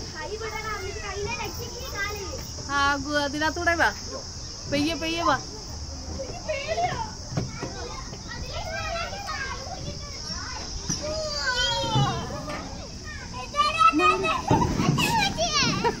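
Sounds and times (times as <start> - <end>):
young children calling out: 0.0 - 2.7, 6.0 - 16.0.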